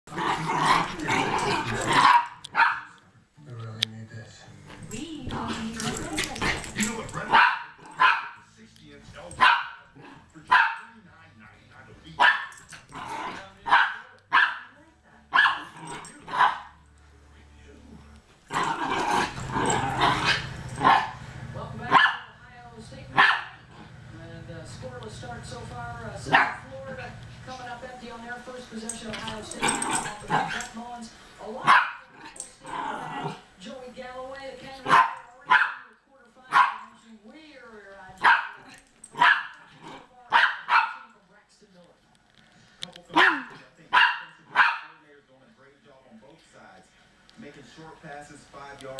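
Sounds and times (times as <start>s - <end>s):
small dogs barking: 0.1s - 3.0s, 5.4s - 8.5s, 9.3s - 11.0s, 12.2s - 14.7s, 15.3s - 16.8s, 18.5s - 22.4s, 23.1s - 23.9s, 26.2s - 26.7s, 31.6s - 33.5s, 34.8s - 37.0s, 38.2s - 41.2s, 43.1s - 45.0s
dogs growling: 0.1s - 8.4s, 9.2s - 10.6s, 12.1s - 14.6s, 15.2s - 22.4s, 23.1s - 33.6s, 38.3s - 40.7s.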